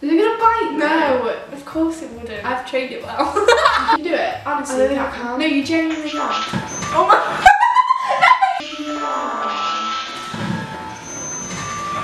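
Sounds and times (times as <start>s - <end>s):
musical phone ringtone: 5.7s - 12.0s.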